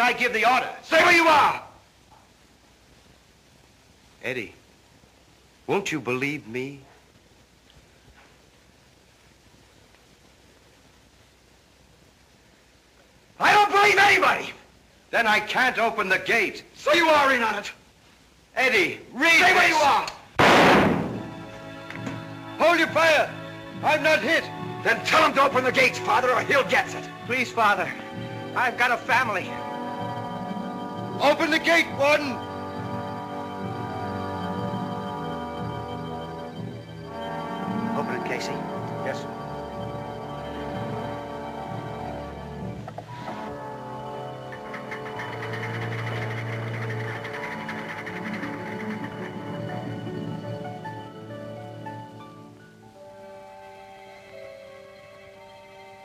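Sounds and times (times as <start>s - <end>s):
gunshot: 20.4s - 21.4s
orchestral chord: 20.9s - 52.1s.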